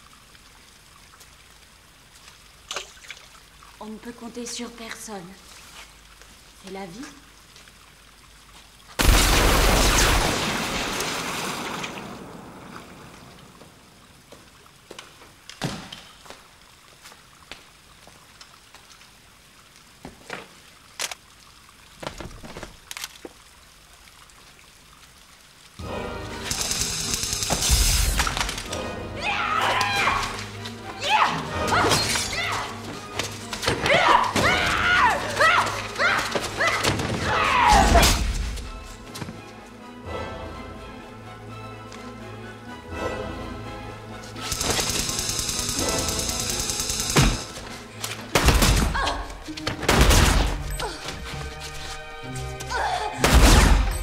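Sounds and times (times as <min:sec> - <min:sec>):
water pouring and spraying: 0:00.0 - 0:39.6, 0:44.0 - 0:54.0
water trickling and dripping: 0:00.0 - 0:54.0
high-pitched strained yells: 0:29.2 - 0:30.4, 0:31.0 - 0:32.8, 0:33.8 - 0:38.0.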